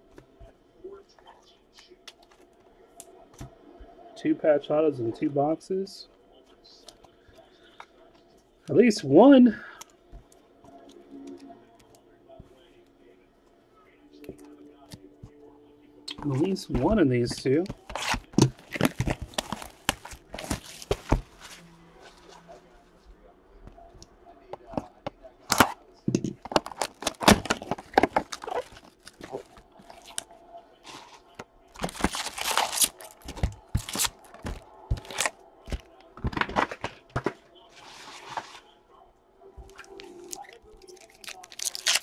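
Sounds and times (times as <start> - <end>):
foil packs crinkling and tearing: 26.6 - 30.2, 31.8 - 36.8, 39.8 - 42.0.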